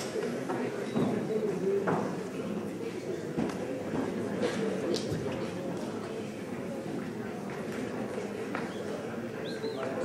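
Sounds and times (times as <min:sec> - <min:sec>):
murmur of voices: 0:00.0 - 0:10.0.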